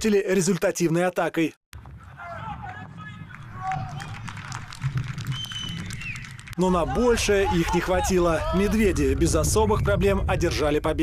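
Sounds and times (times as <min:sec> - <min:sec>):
distant shouts and calls: 0:02.0 - 0:04.3.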